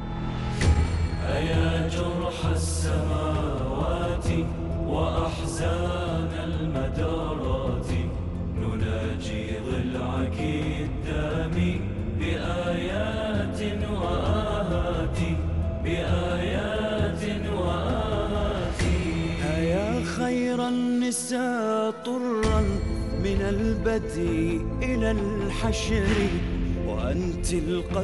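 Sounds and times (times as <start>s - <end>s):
steady low drone: 0.0s - 20.5s
slow chanted lament: 1.0s - 28.0s.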